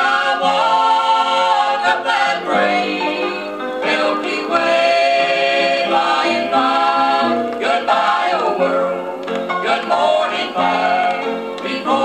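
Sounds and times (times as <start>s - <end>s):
vocal group singing in harmony: 0.0s - 12.0s.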